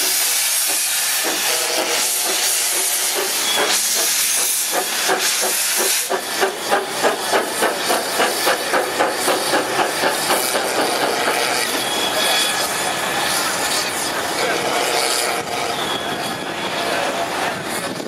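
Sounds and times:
steam exhaust chuffs: 0.0s - 17.9s
loud steam hiss: 0.0s - 18.0s.

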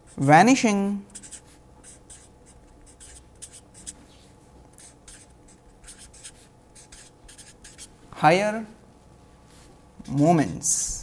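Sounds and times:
marker pen scratching on paper: 1.1s - 8.0s, 10.0s - 10.6s.

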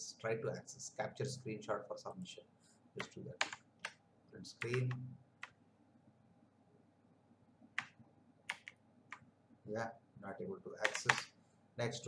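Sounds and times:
keyboard key presses: 3.0s - 4.0s, 4.6s - 5.6s, 7.8s - 9.2s, 10.8s - 11.3s.

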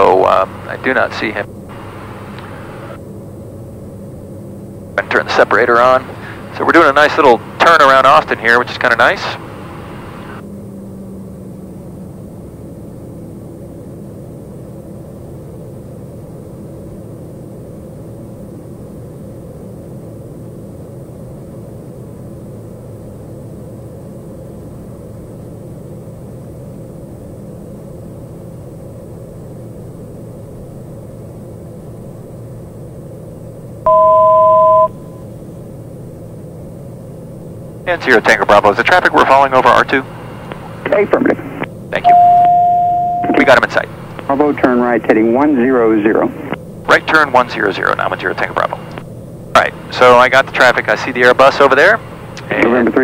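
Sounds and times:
turboprop engine drone: 0.0s - 53.0s
two-note electronic tone: 33.9s - 35.2s, 42.0s - 43.6s.

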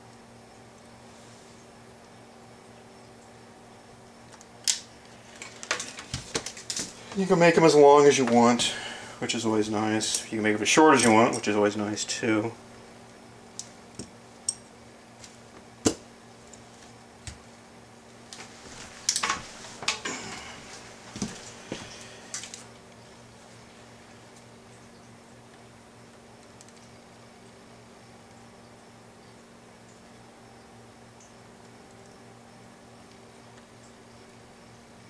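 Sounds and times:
faint steady hum: 0.0s - 35.0s
tools clicking and clattering: 19.1s - 20.2s.

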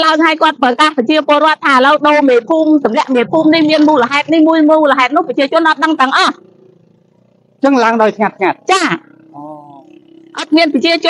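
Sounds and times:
woman talking into microphone: 0.0s - 6.4s, 8.3s - 9.0s, 10.4s - 11.0s.

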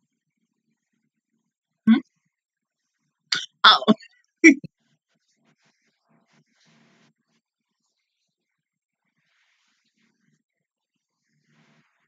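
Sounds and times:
woman's wordless vocal bursts: 3.4s - 4.6s.

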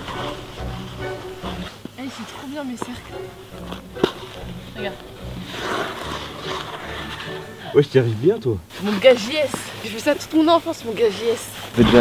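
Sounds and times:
ice skates scraping on ice: 0.0s - 7.8s.

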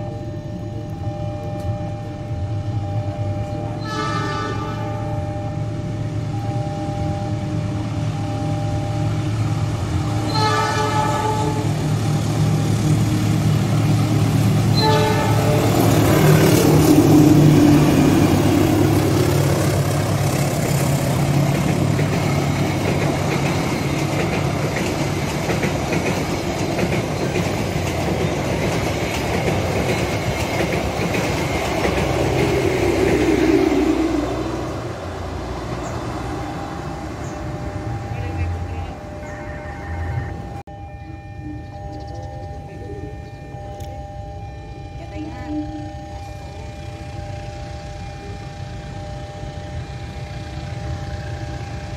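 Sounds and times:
rumble of train wheels: 0.0s - 51.9s
train engine drone: 0.0s - 51.9s
train horn blasts: 3.8s - 5.4s, 10.2s - 12.0s, 14.7s - 18.5s, 38.2s - 40.6s.

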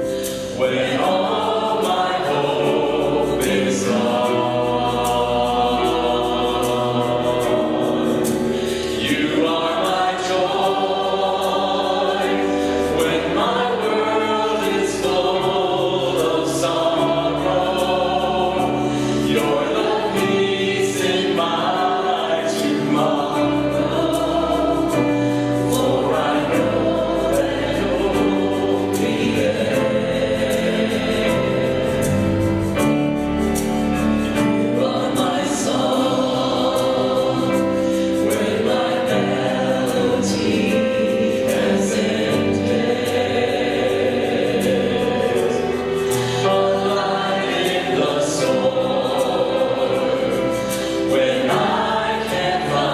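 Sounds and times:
choir singing gospel: 0.0s - 52.9s.

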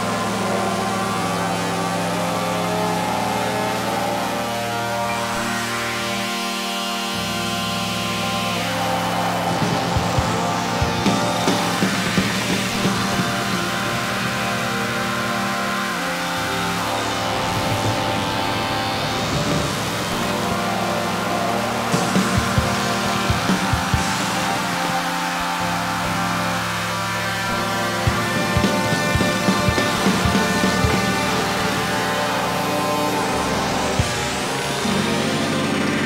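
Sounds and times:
synthesizer chords over bass: 0.0s - 36.0s.

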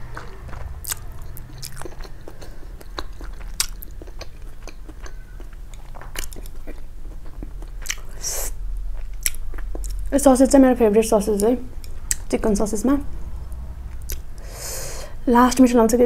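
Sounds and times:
person chewing noodles: 0.0s - 10.0s, 13.9s - 14.6s
breathy hiss: 14.4s - 15.3s.

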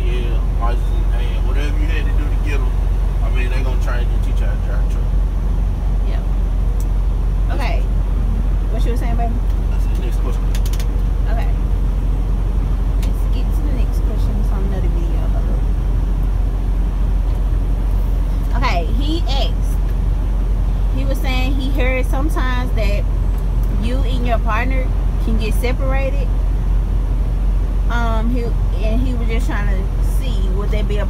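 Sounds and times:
truck engine and road noise: 0.0s - 31.0s.

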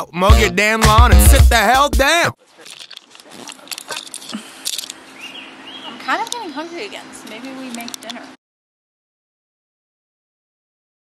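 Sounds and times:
light clicks and rattles: 2.5s - 5.0s, 6.1s - 6.6s, 7.2s - 8.4s.

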